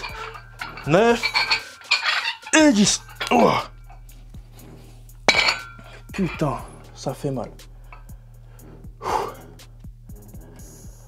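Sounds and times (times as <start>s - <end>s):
metallic clink of dumbbells: 0.0s - 4.1s, 5.3s - 6.8s.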